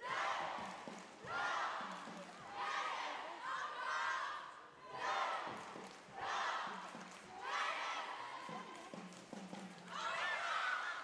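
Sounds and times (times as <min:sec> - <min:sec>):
cheerleaders shouting in unison: 0:00.0 - 0:00.7, 0:01.3 - 0:05.6, 0:07.3 - 0:08.7, 0:09.9 - 0:11.0.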